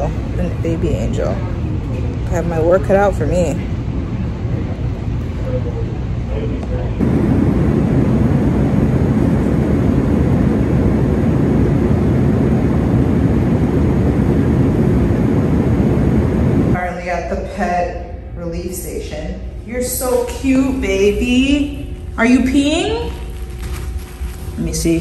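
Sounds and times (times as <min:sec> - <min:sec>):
airliner cabin engine rush: 0:00.0 - 0:24.8.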